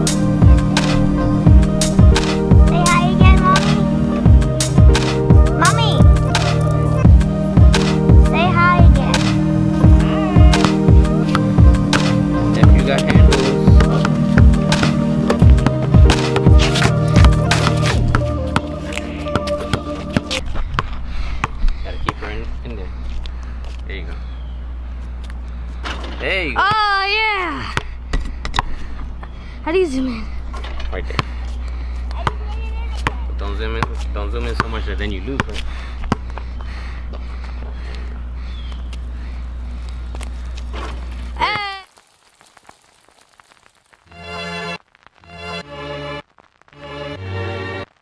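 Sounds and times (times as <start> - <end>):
background music: 0.0 - 20.4, 44.1 - 46.2, 46.8 - 48.0
basketball bouncing on concrete: 15.3 - 18.3, 19.3 - 22.2, 26.6 - 27.0, 27.7 - 28.7, 32.1 - 33.2, 33.8 - 36.4
faint patter of light rain: 41.0 - 48.0.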